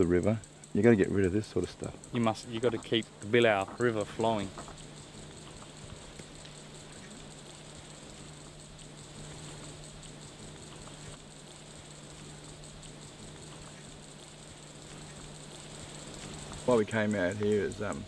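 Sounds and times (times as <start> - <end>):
low steady hum: 0.0 - 18.0
outdoor hiss: 0.0 - 18.0.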